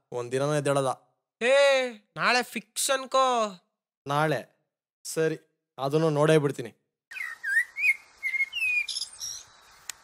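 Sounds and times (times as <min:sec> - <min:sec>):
birds chirping: 0:07.1 - 0:10.0.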